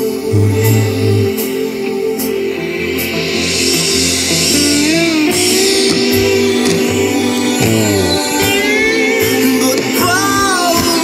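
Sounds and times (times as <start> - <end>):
live rock band playing slow song: 0.0 - 11.0.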